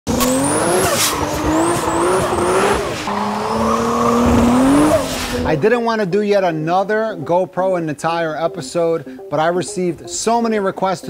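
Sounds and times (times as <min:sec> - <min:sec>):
car engine revving high: 0:00.1 - 0:05.6
tyres squealing and skidding: 0:00.1 - 0:05.6.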